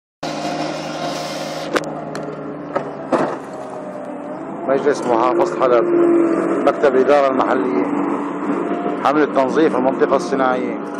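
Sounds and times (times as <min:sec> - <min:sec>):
loader engine running: 0:00.2 - 0:10.9.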